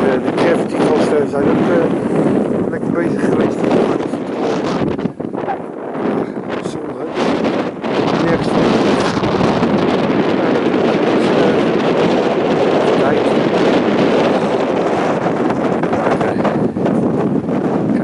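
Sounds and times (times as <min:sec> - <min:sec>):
wind rushing across microphone: 0:00.0 - 0:18.0.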